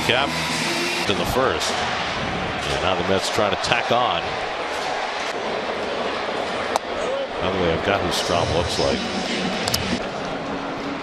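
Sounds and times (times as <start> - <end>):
murmur of crowd: 1.4 - 11.0.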